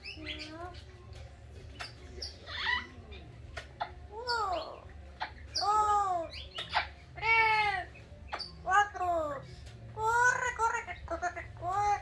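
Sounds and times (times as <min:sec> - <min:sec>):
parrot squeaky calls: 0:01.8 - 0:09.0.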